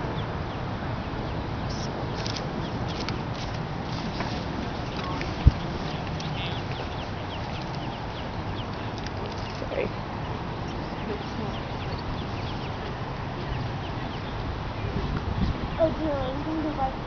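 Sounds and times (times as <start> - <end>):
ducklings peeping: 0.0 - 16.0
steady background noise: 0.0 - 17.0.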